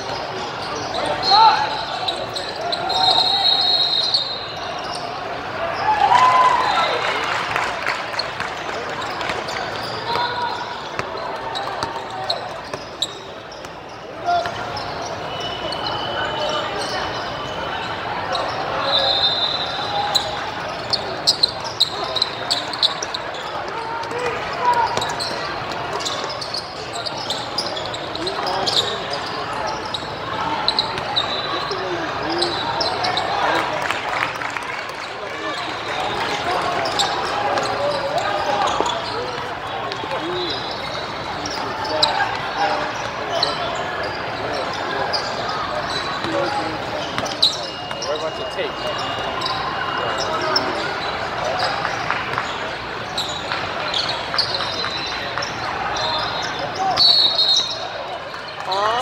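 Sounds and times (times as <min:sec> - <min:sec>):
sneaker squeaks: 0:00.0 - 0:34.0, 0:34.8 - 0:59.0
voices of players and spectators: 0:00.0 - 0:59.0.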